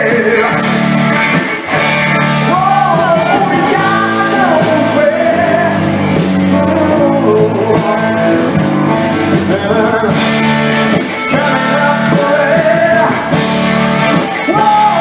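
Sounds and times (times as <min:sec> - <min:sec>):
bending lead guitar melody: 0:00.0 - 0:15.0
blues-rock band playing: 0:00.0 - 0:15.0.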